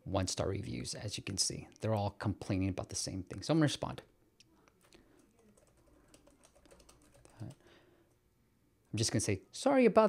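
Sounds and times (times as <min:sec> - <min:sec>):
typing on computer keyboard: 0:04.8 - 0:07.6.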